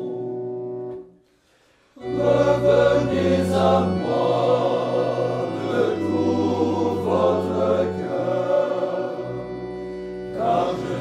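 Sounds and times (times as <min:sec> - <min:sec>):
men's choir singing: 0:02.0 - 0:11.0.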